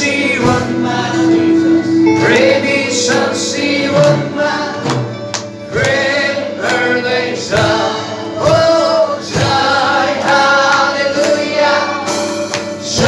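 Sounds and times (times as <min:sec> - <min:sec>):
congregation singing a worship song: 0:00.0 - 0:13.0.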